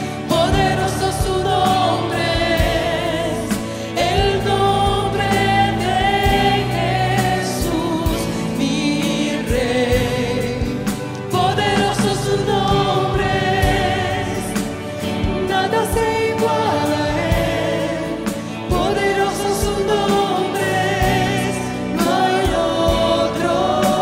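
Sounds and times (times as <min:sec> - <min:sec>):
congregation singing: 0:00.0 - 0:24.0
woman singing lead: 0:00.0 - 0:24.0.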